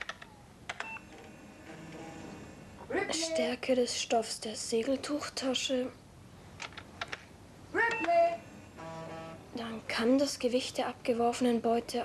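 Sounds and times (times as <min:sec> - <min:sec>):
computer keyboard keystrokes: 0:00.0 - 0:01.0, 0:06.6 - 0:07.3.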